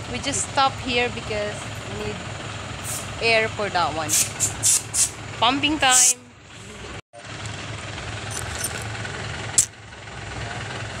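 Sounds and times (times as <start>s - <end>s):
air compressor humming: 4.1s - 5.2s
loud hiss of air: 4.1s - 5.2s.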